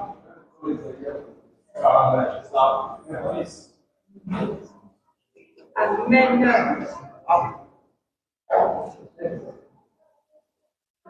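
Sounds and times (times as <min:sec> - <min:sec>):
person speaking: 0:01.8 - 0:03.6, 0:05.8 - 0:07.5.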